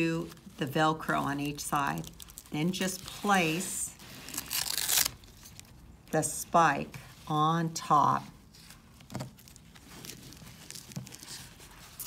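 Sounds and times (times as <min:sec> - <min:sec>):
fabric rustling and handling: 0:00.0 - 0:12.0.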